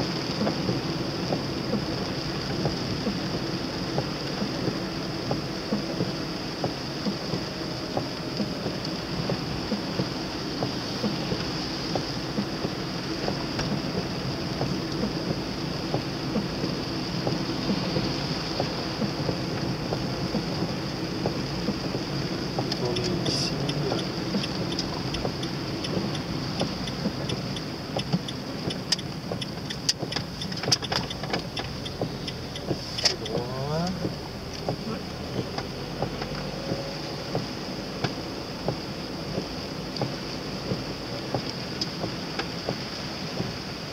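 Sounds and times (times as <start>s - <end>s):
car cabin road noise: 0.0s - 43.9s
sharp ticks: 22.5s - 34.8s.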